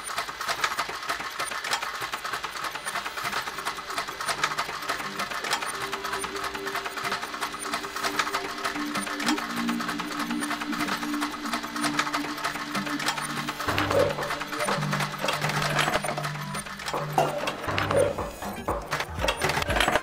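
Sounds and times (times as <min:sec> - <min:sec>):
fast clicking rhythm: 0:00.0 - 0:20.0.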